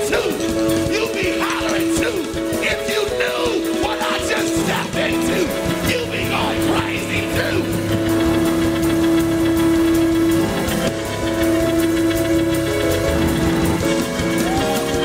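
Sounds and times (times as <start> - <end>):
drums: 0.0 - 15.0
held keyboard chords: 0.0 - 15.0.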